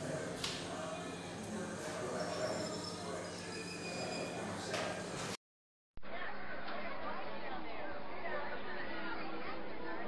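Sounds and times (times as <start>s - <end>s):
indistinct chatter of voices: 0.0s - 5.4s, 6.0s - 10.0s.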